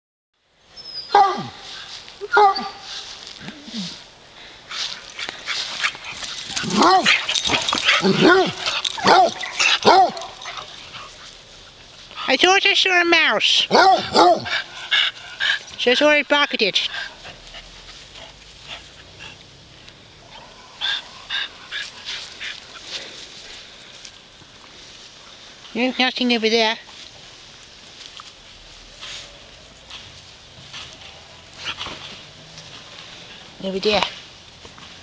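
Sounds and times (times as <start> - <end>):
dog barking: 1.1 - 1.6, 2.3 - 2.8, 7.9 - 10.7, 13.7 - 14.5.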